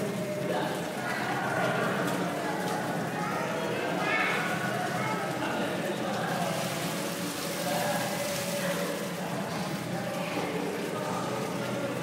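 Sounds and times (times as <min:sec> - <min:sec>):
water splashing on stone: 0:06.3 - 0:09.9.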